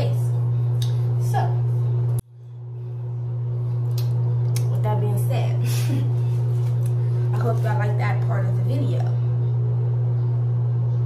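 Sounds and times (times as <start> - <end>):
loud low hum: 0.0 - 11.0.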